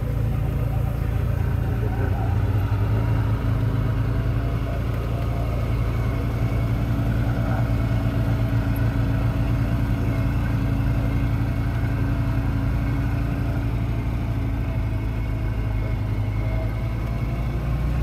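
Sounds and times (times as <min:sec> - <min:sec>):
utility vehicle engine droning: 0:00.0 - 0:18.0.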